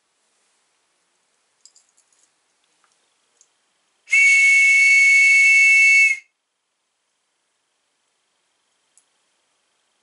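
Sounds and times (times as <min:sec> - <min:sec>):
whistle blast: 0:04.1 - 0:06.3.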